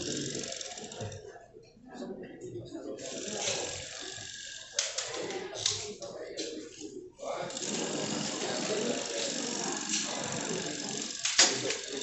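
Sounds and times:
tool whirring and rattling: 0:00.0 - 0:01.2, 0:03.0 - 0:05.9, 0:07.5 - 0:12.0.

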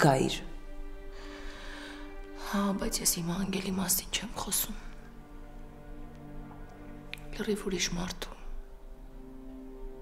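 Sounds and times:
woman speaking softly: 0:00.0 - 0:00.5.

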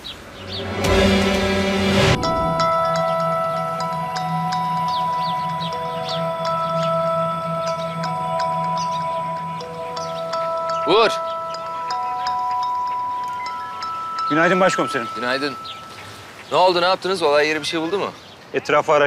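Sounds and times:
short rising call: 0:00.2 - 0:09.9
music of held notes and chimes: 0:00.5 - 0:17.8.

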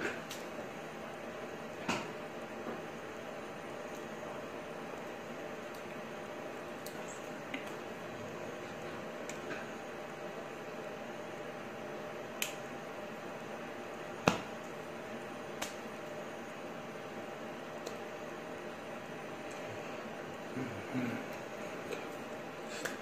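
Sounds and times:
room and microphone hiss: 0:00.0 - 0:23.0.

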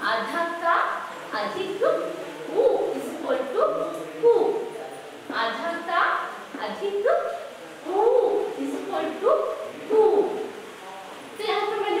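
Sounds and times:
woman reciting syllables: 0:00.0 - 0:04.7, 0:05.3 - 0:10.6, 0:11.4 - 0:12.0.

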